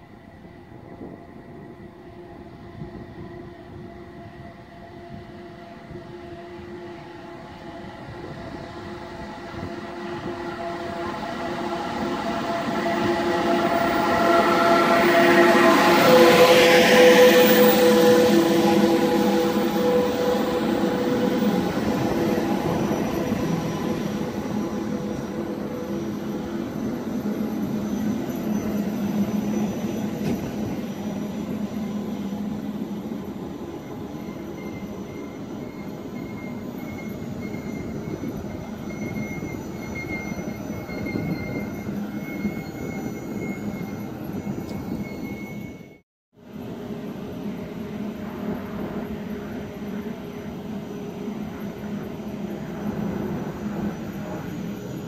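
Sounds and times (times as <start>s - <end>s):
electric train passing: 0.0s - 55.0s
locomotive whining tones: 0.4s - 46.0s.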